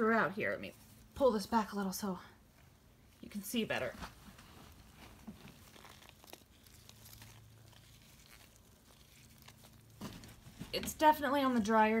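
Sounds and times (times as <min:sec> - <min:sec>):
dry bedding rustling and crinkling: 0:03.5 - 0:11.7.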